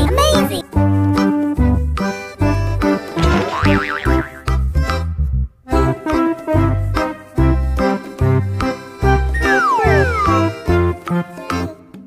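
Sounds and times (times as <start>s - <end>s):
wobbling tone rising and falling: 9.4s - 10.6s.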